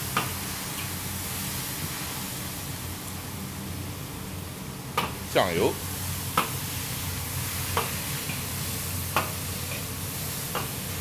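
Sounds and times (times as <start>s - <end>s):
chicken sizzling in a wok: 0.0s - 11.0s.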